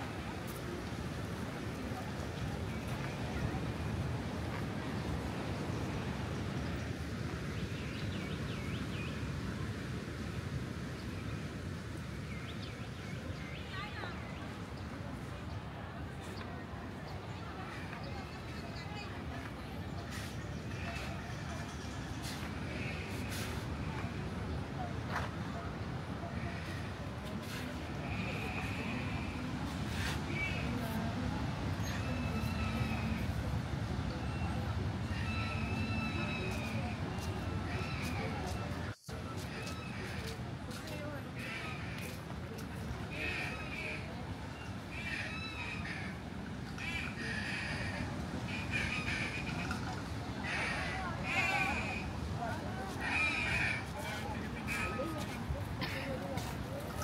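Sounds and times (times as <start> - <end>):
people talking: 0.0 - 8.1, 12.9 - 57.0
indistinct crowd voices: 12.3 - 57.0.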